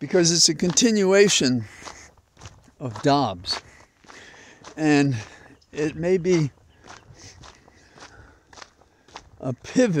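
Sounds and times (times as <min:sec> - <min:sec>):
footsteps on woodland path: 0:00.0 - 0:10.0.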